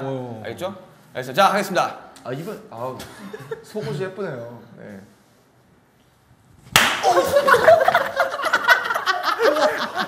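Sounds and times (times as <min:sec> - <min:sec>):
loud open-hand slap on clothing: 0:06.7 - 0:07.2.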